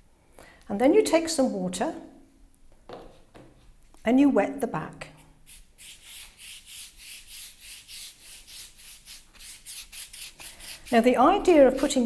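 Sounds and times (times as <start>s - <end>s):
wet brush sweeping over paper: 5.5s - 12.0s.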